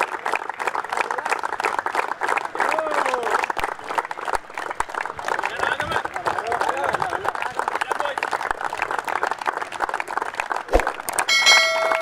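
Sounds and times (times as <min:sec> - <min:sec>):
people clapping: 0:00.0 - 0:12.0
bright bell-like chime: 0:11.3 - 0:12.0.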